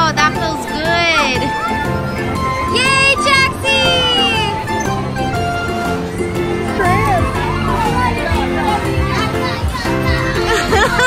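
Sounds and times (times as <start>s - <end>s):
carousel music: 0.0s - 11.0s
children calling out: 0.0s - 11.0s.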